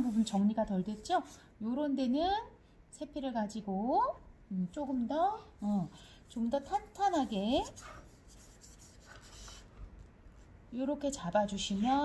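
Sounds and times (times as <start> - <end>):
brush stroking over paper: 0.0 - 1.4, 6.6 - 10.6.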